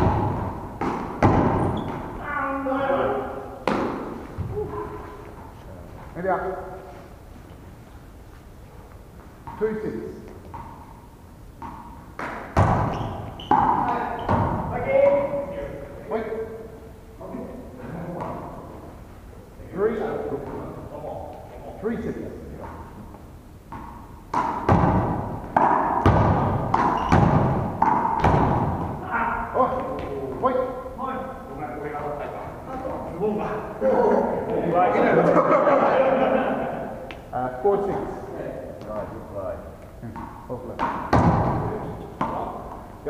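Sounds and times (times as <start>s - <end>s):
rubber ball thudding in hall: 0.0s - 2.2s, 3.6s - 5.0s, 11.6s - 15.3s, 23.7s - 29.0s, 40.0s - 42.9s.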